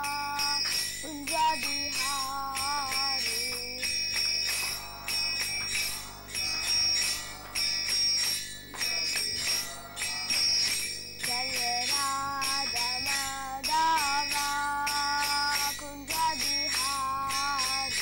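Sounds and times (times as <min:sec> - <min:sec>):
person chanting: 0:00.0 - 0:03.9, 0:04.5 - 0:18.0
hand cymbals struck in rhythm: 0:00.0 - 0:18.0.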